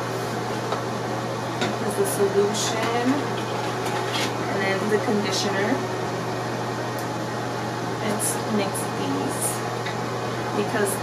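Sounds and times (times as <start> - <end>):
low hum with hiss: 0.0 - 11.0.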